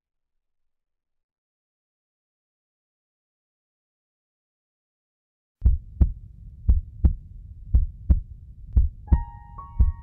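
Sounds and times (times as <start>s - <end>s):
heartbeat double thumps: 5.6s - 10.0s
soft sustained piano notes: 9.1s - 10.0s.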